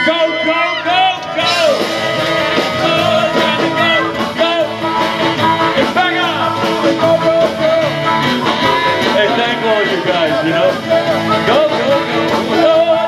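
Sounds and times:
live rock band playing: 0:00.0 - 0:13.0
man and woman singing: 0:02.7 - 0:04.8, 0:09.1 - 0:13.0.

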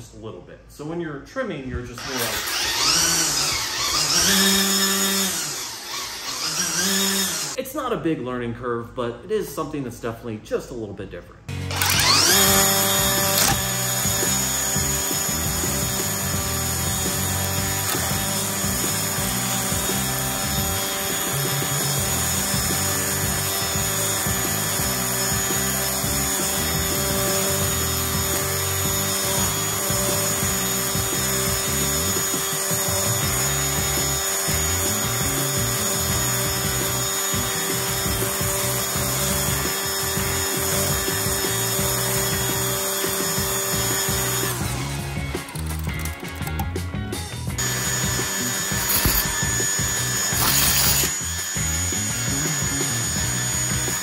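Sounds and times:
string trimmer cutting grass: 0:02.0 - 0:07.6, 0:11.5 - 0:46.6, 0:47.6 - 0:54.0
background music: 0:11.5 - 0:54.0.

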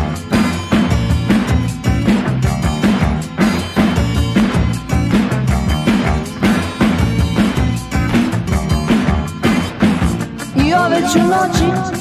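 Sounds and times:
bass line: 0:00.0 - 0:12.0
rock drum kit beat: 0:00.0 - 0:12.0
person singing: 0:10.5 - 0:12.0.

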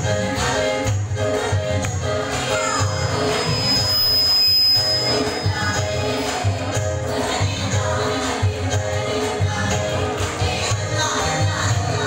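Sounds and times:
group singing: 0:00.0 - 0:12.0
tambourine: 0:02.3 - 0:08.0
thin steady high tone: 0:02.5 - 0:07.2.

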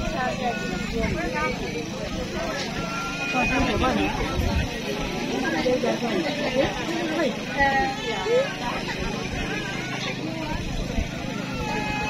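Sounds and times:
crowd talking and chatter: 0:00.0 - 0:12.0.

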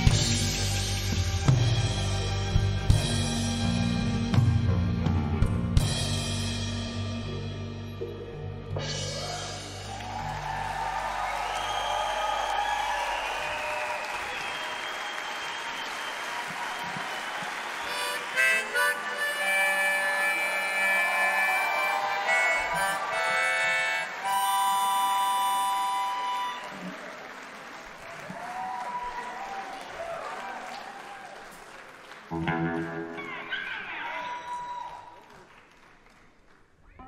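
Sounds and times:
quiet band playing: 0:00.0 - 0:13.5, 0:16.5 - 0:27.0, 0:32.3 - 0:33.4
harmonica solo: 0:17.8 - 0:27.0.

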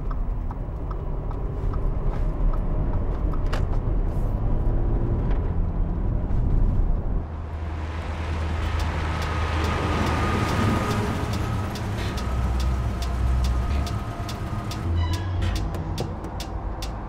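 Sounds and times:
car driving by: 0:07.2 - 0:17.0
electronic score with ticks: 0:08.6 - 0:17.0.

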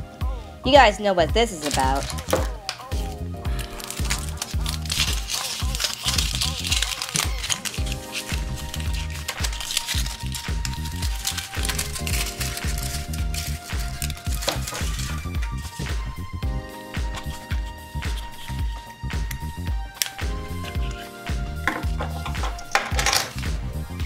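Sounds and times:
background music with steady beat: 0:00.0 - 0:24.0
foil wrapper crinkling: 0:01.6 - 0:16.4, 0:17.0 - 0:23.4.

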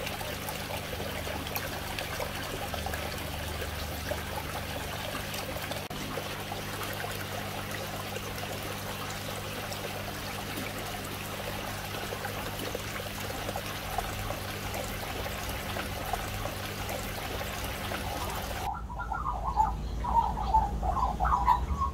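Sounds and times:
water pouring and trickling: 0:00.0 - 0:18.7
low steady hum: 0:00.0 - 0:21.9
bird calls: 0:17.6 - 0:21.9.

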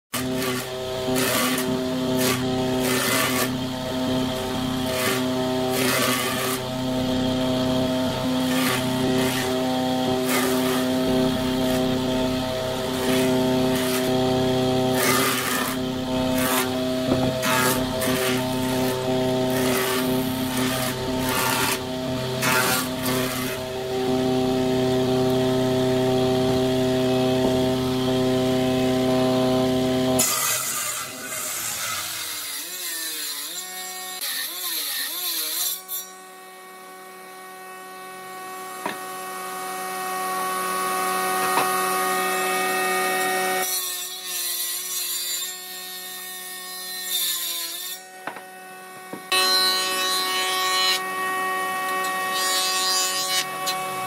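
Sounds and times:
woodworking machine motor hum: 0:00.2 - 0:34.3, 0:36.3 - 0:43.7, 0:48.2 - 0:54.0
jointer cutting wood bursts: 0:00.2 - 0:34.9.

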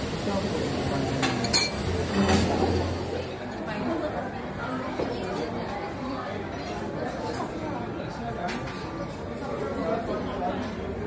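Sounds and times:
metal utensils clinking on dishware: 0:01.2 - 0:02.5.

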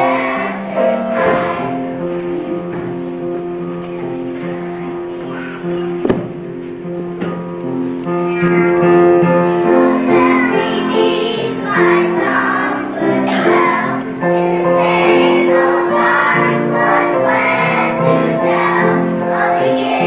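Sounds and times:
children's choir singing: 0:00.0 - 0:06.5, 0:08.5 - 0:20.0.

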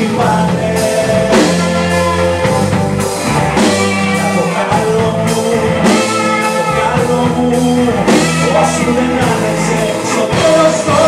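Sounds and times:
bass: 0:00.0 - 0:11.0
drum kit: 0:00.0 - 0:11.0
electric guitar: 0:00.0 - 0:11.0
keyboards: 0:00.0 - 0:11.0.

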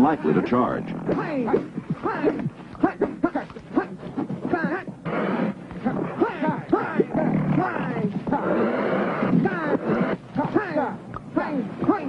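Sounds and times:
cheetahs snarling: 0:00.0 - 0:10.8
men shouting: 0:01.1 - 0:11.0.

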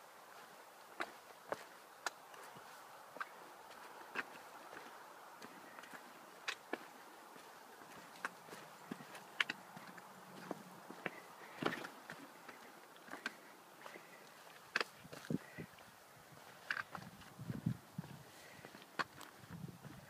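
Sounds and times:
faint steady hiss: 0:00.0 - 0:20.0
footsteps on rocks and leaves: 0:00.3 - 0:20.0.

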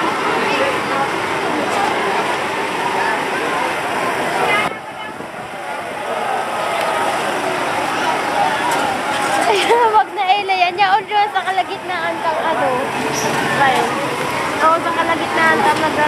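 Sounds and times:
crowd talking: 0:00.0 - 0:16.0.

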